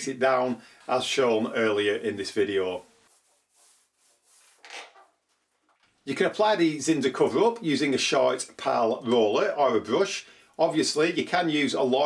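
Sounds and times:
paint roller rubbing on wallpaper: 0.3 - 5.5.

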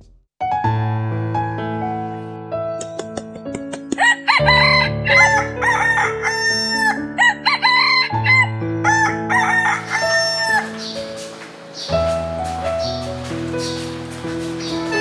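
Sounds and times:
soft piano music: 0.4 - 15.0
roosters crowing: 4.0 - 13.0.

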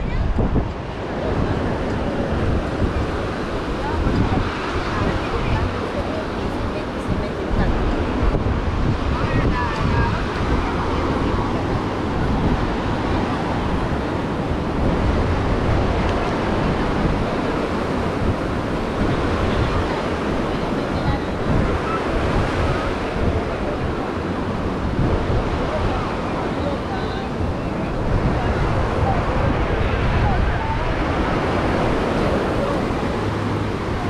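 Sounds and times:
crowd chatter: 0.0 - 34.0
surf washing onto shore: 0.0 - 34.0
wind buffeting microphone: 0.0 - 34.0.

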